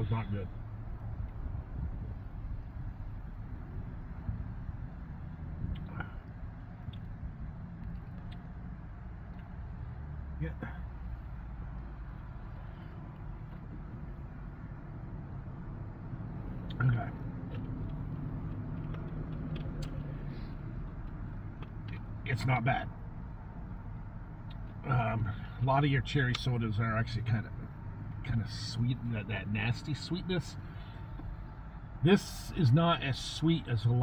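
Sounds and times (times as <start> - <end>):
car engine idling: 0.0 - 33.8
steady low hum in truck cabin: 0.0 - 34.0.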